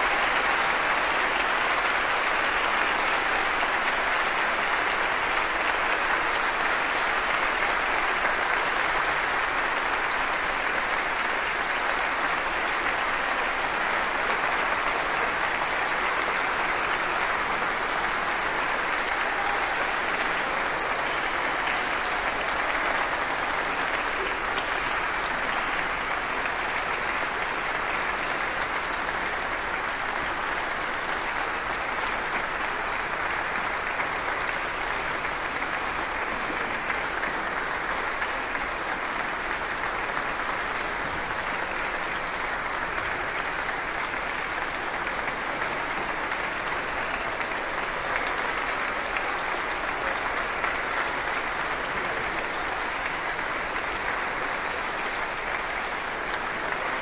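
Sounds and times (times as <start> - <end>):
audience applauding: 0.0 - 57.0.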